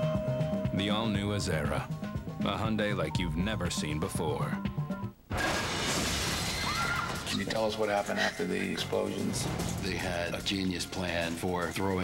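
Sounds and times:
loud shattering crash: 5.3s - 7.9s
trailer music: 8.9s - 11.6s.

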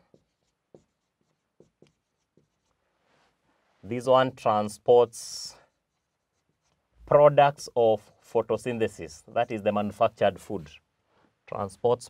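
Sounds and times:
marker writing on whiteboard: 0.0s - 3.4s, 4.6s - 10.8s.

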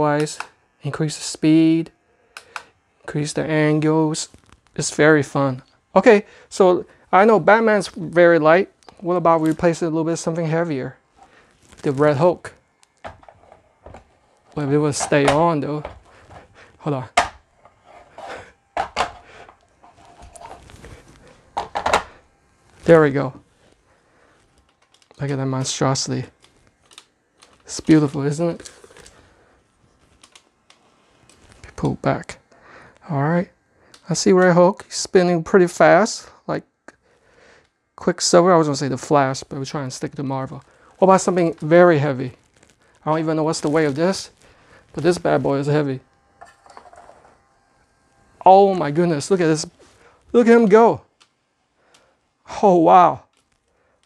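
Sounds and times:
light rubbing: 17.5s - 22.2s.

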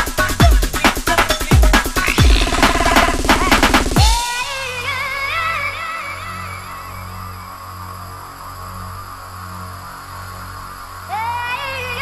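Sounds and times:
electronic melodic line: 2.0s - 4.2s
low bass drone pulsing: 2.0s - 4.2s.

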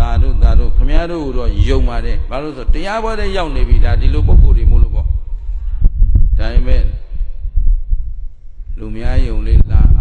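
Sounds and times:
man speaking into microphone: 0.0s - 5.5s, 6.2s - 7.3s, 8.6s - 10.0s
low rumble with soft thumps: 0.0s - 10.0s.

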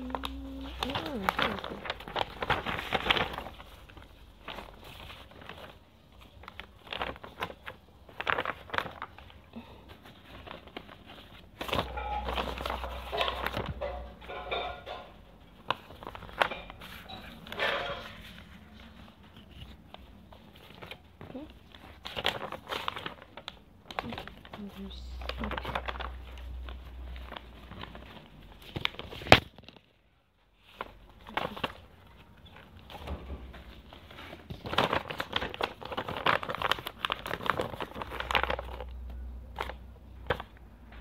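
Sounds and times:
paper rustling and crinkling: 0.0s - 41.0s.

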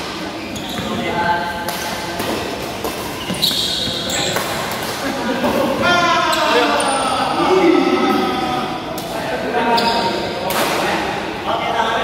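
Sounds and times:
players' voices: 0.3s - 12.0s
racket hitting shuttlecock: 1.6s - 3.6s.

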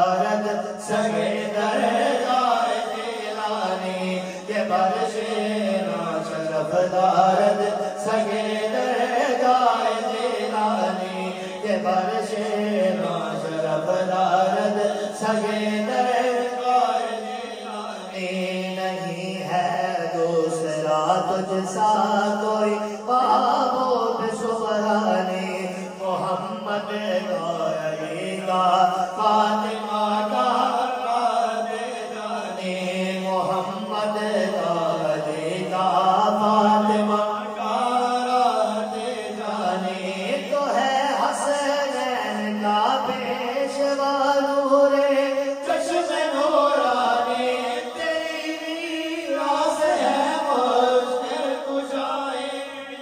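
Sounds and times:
low vocal drone: 0.0s - 53.0s
man singing melody: 0.0s - 53.0s
men chanting into microphones: 0.0s - 53.0s.

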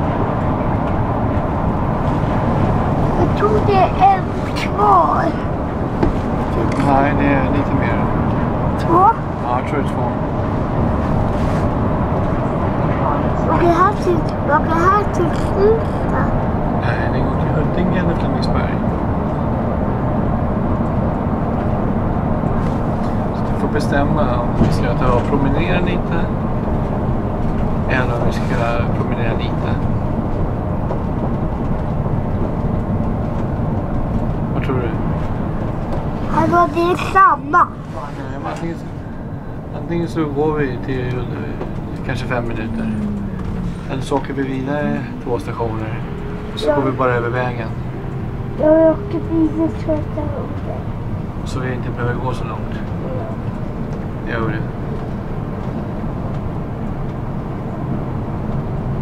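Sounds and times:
bus engine and tyre drone: 0.0s - 59.0s
voices: 3.1s - 10.4s, 12.2s - 18.9s, 23.3s - 26.4s, 27.8s - 29.9s, 36.0s - 54.8s.

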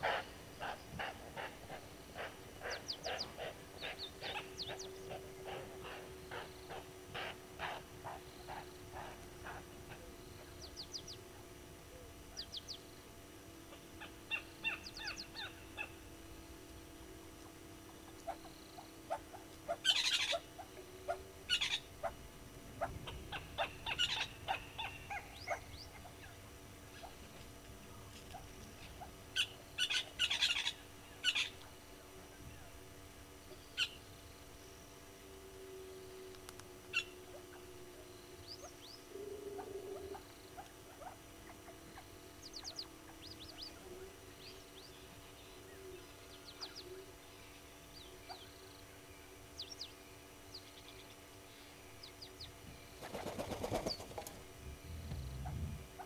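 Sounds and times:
birds chirping and trilling: 0.0s - 11.4s, 12.0s - 27.4s, 28.2s - 32.8s, 33.5s - 35.1s, 36.0s - 56.0s
faint low hum: 0.0s - 56.0s.

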